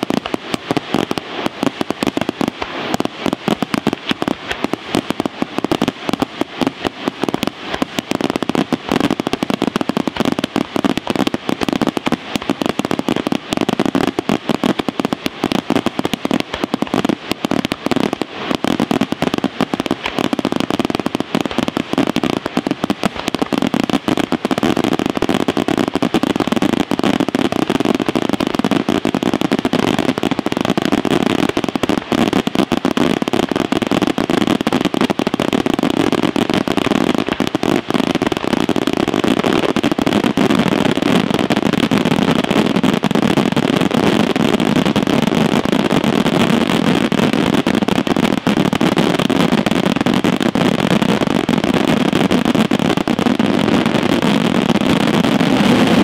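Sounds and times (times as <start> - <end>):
fireworks bursting and crackling: 0.0 - 56.0.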